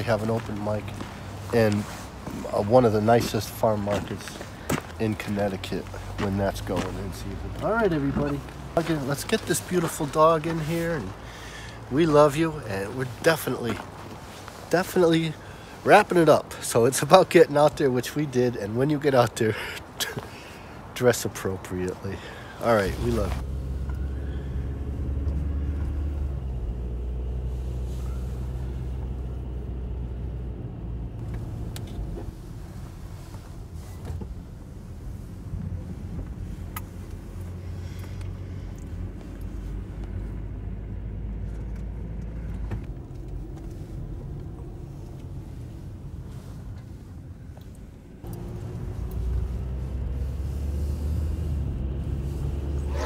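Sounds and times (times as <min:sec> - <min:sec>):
car engine and road rumble: 0:00.0 - 0:53.0.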